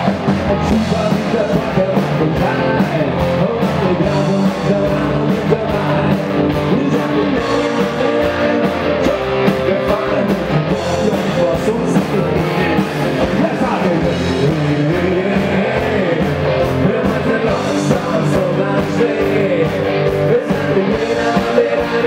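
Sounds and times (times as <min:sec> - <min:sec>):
electric guitar: 0:00.0 - 0:22.0
person singing: 0:00.0 - 0:22.0
steady drum beat: 0:00.0 - 0:22.0.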